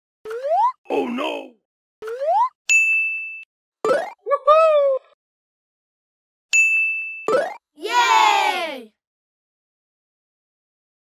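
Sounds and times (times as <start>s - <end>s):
bell-like ding: 2.7s - 3.5s, 6.5s - 7.3s.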